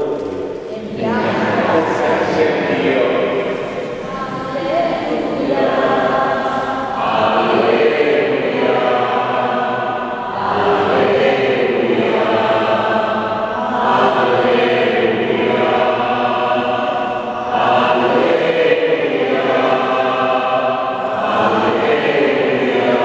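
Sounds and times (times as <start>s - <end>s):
church choir chanting: 0.0s - 23.0s.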